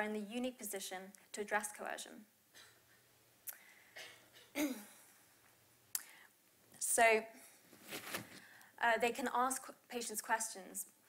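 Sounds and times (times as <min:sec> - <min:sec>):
woman speaking: 0:00.0 - 0:02.3, 0:06.8 - 0:07.4, 0:08.8 - 0:10.9
sharp throat sound: 0:03.5 - 0:05.0
woman coughing: 0:04.0 - 0:05.1.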